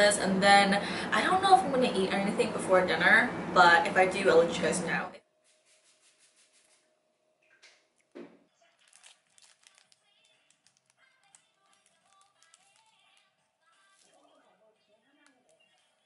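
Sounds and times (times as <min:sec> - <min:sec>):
faint background music: 0:08.4 - 0:16.0
plastic snack wrapper crinkling: 0:08.6 - 0:16.0.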